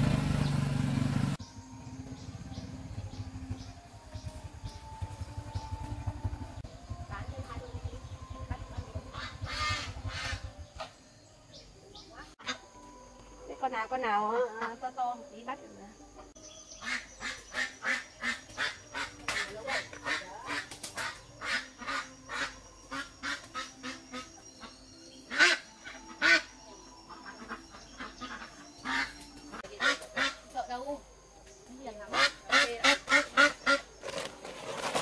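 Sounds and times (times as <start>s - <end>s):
duck quacking loudly: 9.1s - 10.4s, 16.8s - 24.7s, 29.8s - 30.4s, 32.1s - 33.8s.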